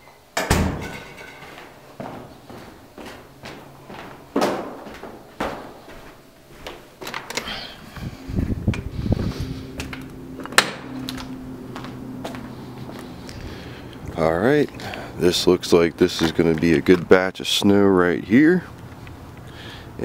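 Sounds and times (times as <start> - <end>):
steady low hum: 0.3 - 20.0
footsteps in a stairwell: 1.2 - 7.3, 9.2 - 13.2.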